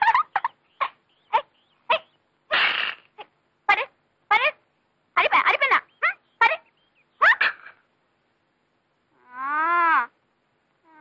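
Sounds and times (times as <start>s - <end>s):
person making animal-like cries: 9.2s - 10.2s.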